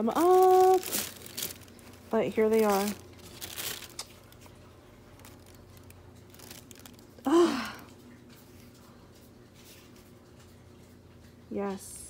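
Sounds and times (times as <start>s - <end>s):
tissue paper and cloth bag rustling: 0.0s - 4.5s, 5.1s - 7.1s.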